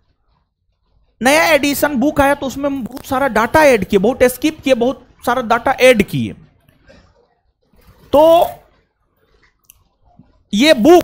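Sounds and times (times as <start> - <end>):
man speaking: 1.2 - 6.5, 8.0 - 8.7, 10.5 - 11.0.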